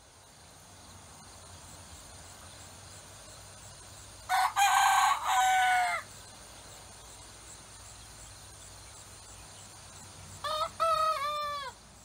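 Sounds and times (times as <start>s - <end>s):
rooster crowing: 4.3s - 6.1s, 10.4s - 11.8s.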